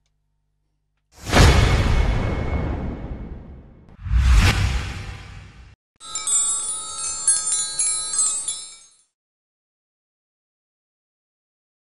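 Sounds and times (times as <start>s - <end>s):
wind chimes tinkling: 6.0s - 9.2s.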